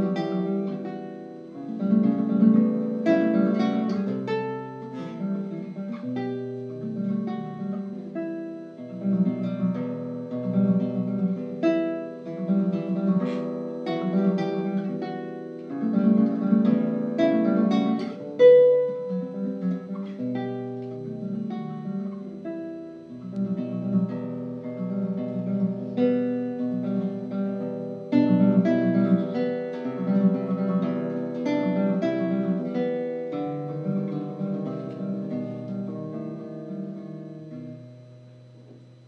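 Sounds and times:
solo classical guitar: 0.0s - 39.0s.

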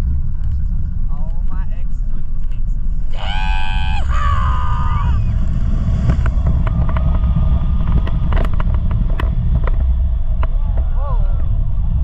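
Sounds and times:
roller coaster clacks and rattles: 0.0s - 3.1s, 5.1s - 12.0s
wind noise on microphone: 0.0s - 12.0s.

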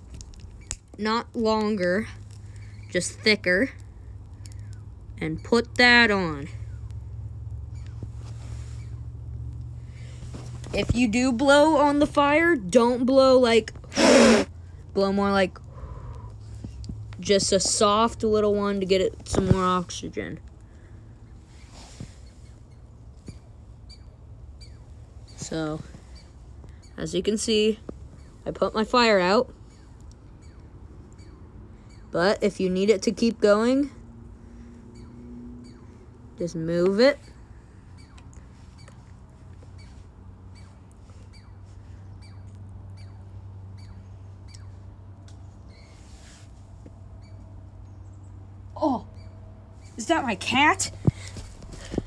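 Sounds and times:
steady low rumble: 0.0s - 13.9s, 14.5s - 52.0s
low steady hum: 0.0s - 52.0s
chipmunk chirping: 29.7s - 32.2s, 35.0s - 35.9s, 38.0s - 39.0s, 39.7s - 44.8s.

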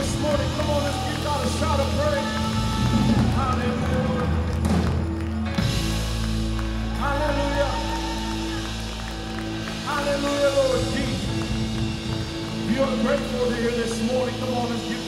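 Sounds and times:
held bass notes: 0.0s - 15.0s.

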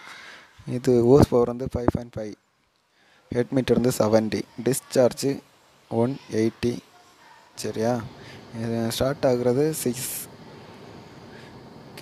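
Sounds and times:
short hiss: 7.8s - 12.0s.

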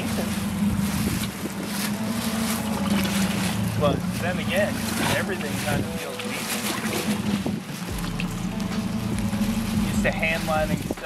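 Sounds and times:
steady low hum: 0.0s - 6.0s, 7.3s - 11.0s
wind and rain on microphone: 0.0s - 11.0s.

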